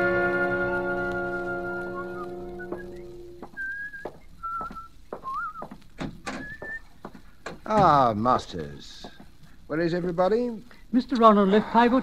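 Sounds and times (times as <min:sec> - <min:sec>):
brass-led orchestral music: 0:00.0 - 0:03.4
person whistling short notes: 0:00.8 - 0:05.7, 0:06.4 - 0:06.9
footstep-like knocks: 0:02.6 - 0:09.7.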